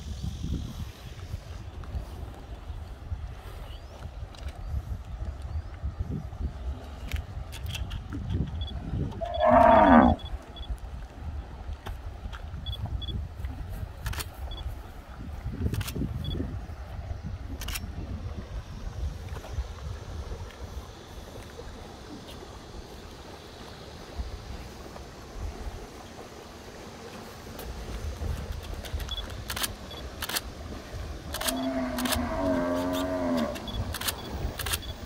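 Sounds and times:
steady low rumble: 0.0 - 35.0
cow mooing: 9.2 - 10.3, 31.5 - 33.8.

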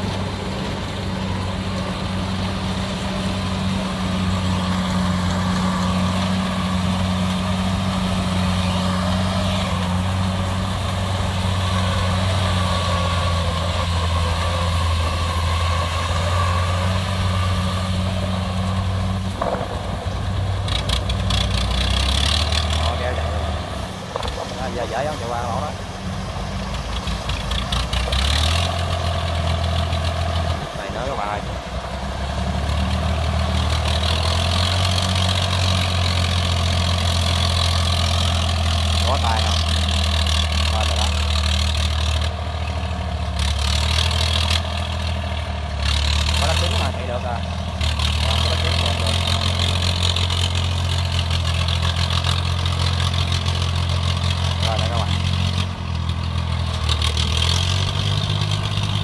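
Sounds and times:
diesel engines running: 0.0 - 59.0.

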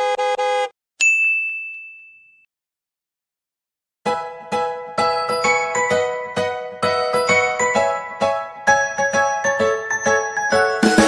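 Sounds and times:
bright high chime ding: 1.0 - 2.5.

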